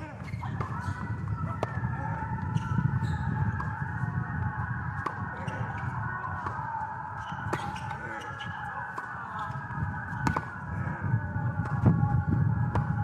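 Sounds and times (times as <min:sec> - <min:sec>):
tennis ball hit by rackets: 0:07.5 - 0:07.9, 0:10.1 - 0:10.5.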